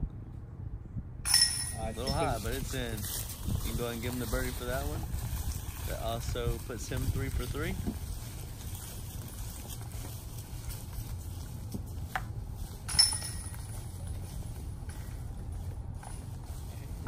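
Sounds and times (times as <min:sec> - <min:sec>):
disc hitting metal chain basket: 0:01.3 - 0:02.5, 0:12.8 - 0:15.0.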